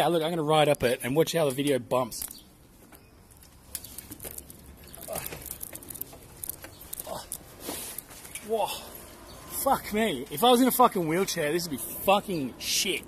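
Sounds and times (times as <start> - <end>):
bicycle rattling over steps: 3.8 - 8.4.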